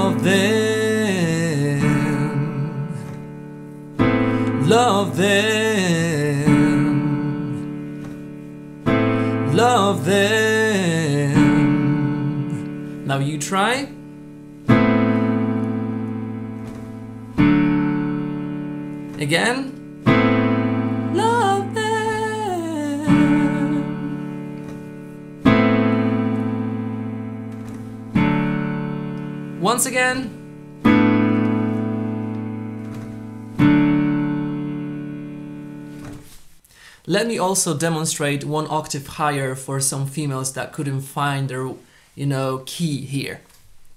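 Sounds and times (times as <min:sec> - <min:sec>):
piano chords: 0:00.0 - 0:36.6.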